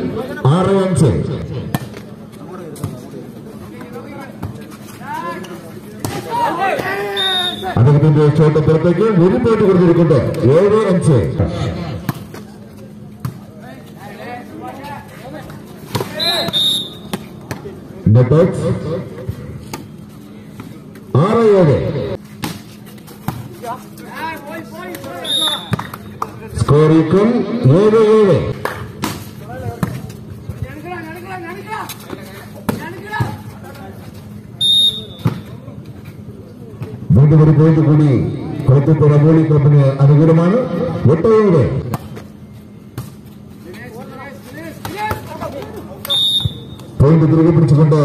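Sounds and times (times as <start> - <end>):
volleyball hits: 24.9 - 26.4
short high whistle blast: 34.6 - 35.2.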